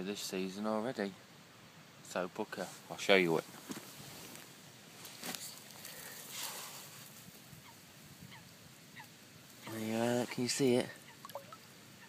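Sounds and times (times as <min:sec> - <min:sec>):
brief rustle: 0:03.5 - 0:07.1
distant waterbird calls: 0:07.6 - 0:12.0.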